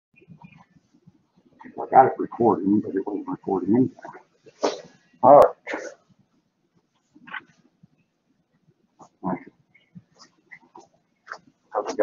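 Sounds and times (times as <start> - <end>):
muffled vocal sounds: 1.6 - 6.0, 9.0 - 12.0.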